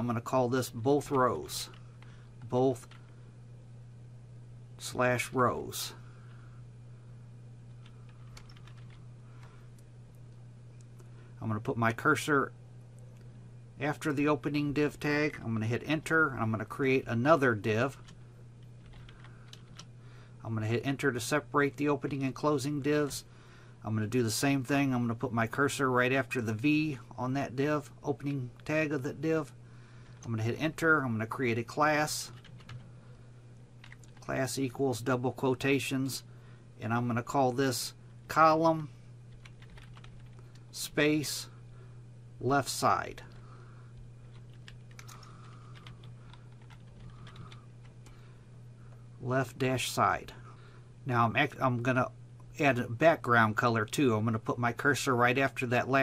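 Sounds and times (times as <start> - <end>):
steady low hum: 0.0 - 56.0
computer keyboard keystrokes: 7.8 - 9.0, 18.8 - 19.9, 32.3 - 32.8, 33.8 - 34.2, 39.4 - 40.6, 44.3 - 47.6.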